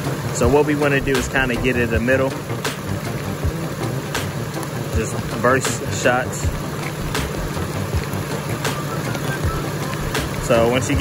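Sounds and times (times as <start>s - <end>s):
car engine idling: 0.0s - 11.0s
rain hissing: 0.0s - 11.0s.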